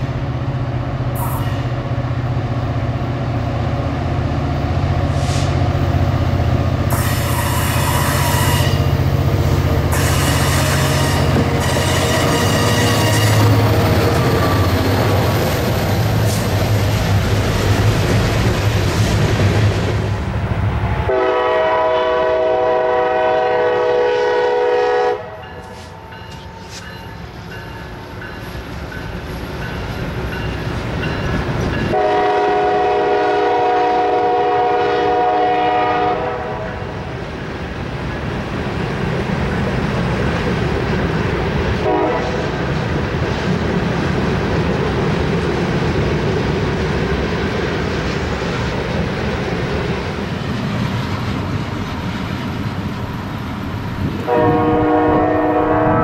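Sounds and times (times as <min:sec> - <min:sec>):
diesel locomotive rumbling: 0:00.0 - 0:56.0
train horn blasts: 0:06.9 - 0:09.0, 0:09.9 - 0:14.6, 0:21.1 - 0:25.9, 0:31.8 - 0:36.9, 0:41.8 - 0:42.4, 0:54.2 - 0:56.0.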